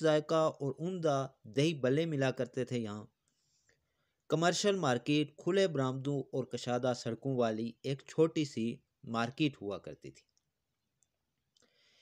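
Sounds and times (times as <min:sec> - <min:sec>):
soft breath: 0:03.3 - 0:04.2, 0:11.6 - 0:12.0.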